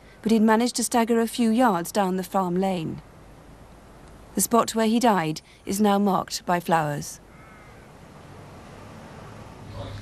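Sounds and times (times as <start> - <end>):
low outdoor hiss: 0.0 - 10.0
crow cawing: 7.3 - 8.0.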